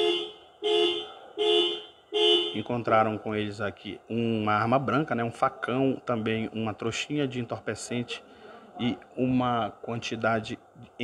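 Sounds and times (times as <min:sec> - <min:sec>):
two-tone vehicle horn honks: 0:00.0 - 0:02.8.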